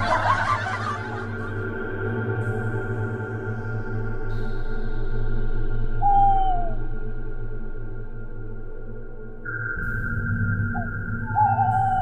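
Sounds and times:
eerie droning music: 0.0s - 12.0s.

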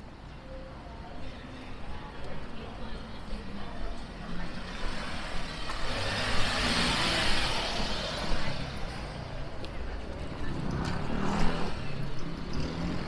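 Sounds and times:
city street traffic: 0.0s - 13.0s
vehicle passing close: 4.6s - 9.4s.

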